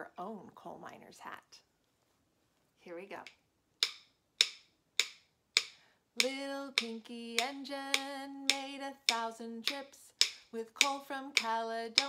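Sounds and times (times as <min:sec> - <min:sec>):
rhythm sticks clicking: 0:03.2 - 0:12.0.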